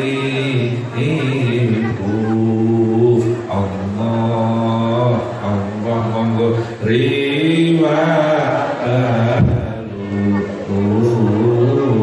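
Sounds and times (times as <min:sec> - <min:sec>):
man chanting through microphone: 0:00.0 - 0:12.0.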